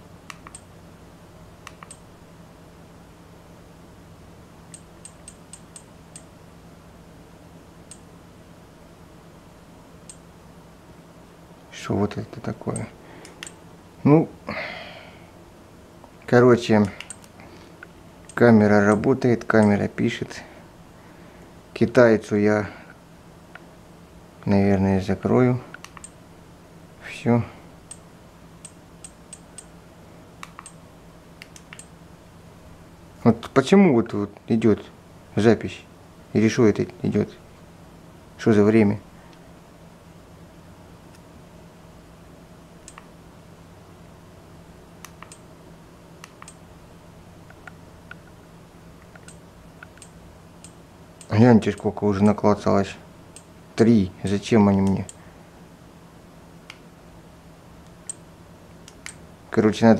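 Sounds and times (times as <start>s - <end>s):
faint low hum: 0.0s - 59.9s.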